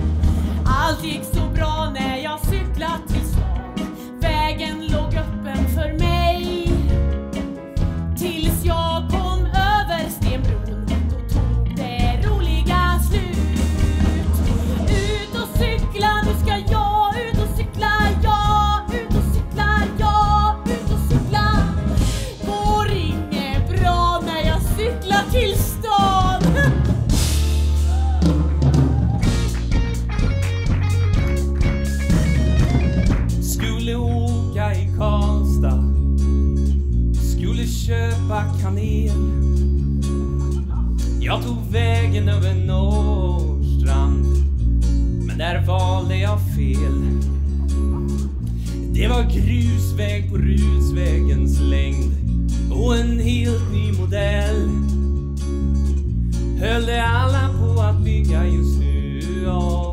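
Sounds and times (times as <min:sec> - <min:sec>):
bass line: 0:00.0 - 0:59.9
live band music: 0:00.0 - 0:59.9
man singing: 0:11.7 - 0:19.9, 0:33.4 - 0:36.0, 0:37.2 - 0:39.4, 0:41.2 - 0:44.5, 0:45.3 - 0:47.4, 0:48.9 - 0:55.0, 0:56.6 - 0:59.9.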